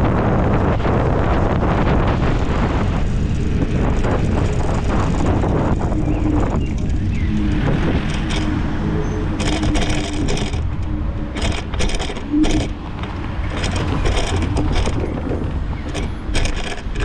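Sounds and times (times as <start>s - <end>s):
tyre and road noise: 0.0s - 17.0s
wind rushing on microphone: 0.0s - 17.0s.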